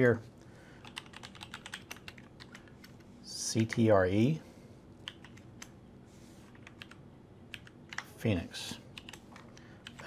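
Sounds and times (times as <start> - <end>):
computer keyboard typing: 0.8 - 3.9, 5.0 - 5.8, 6.5 - 8.2, 8.9 - 10.0.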